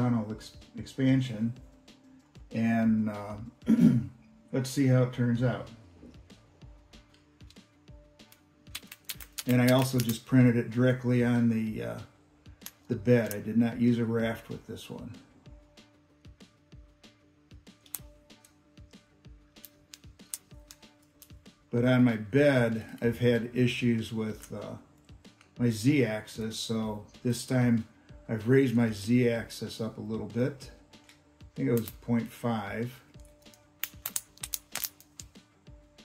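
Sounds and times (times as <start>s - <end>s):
quiet background music: 0.0s - 36.0s
small plastic clicks: 8.2s - 10.2s, 33.2s - 35.4s.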